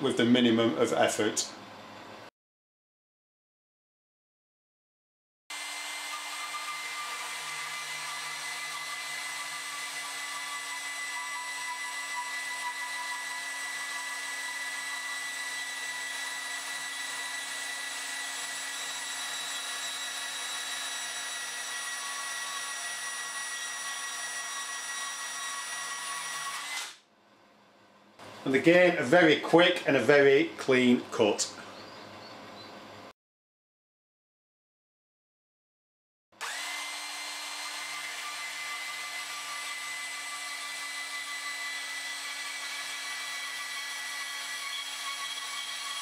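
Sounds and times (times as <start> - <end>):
bandsaw cutting steel: 5.5 - 27.0, 36.4 - 46.0.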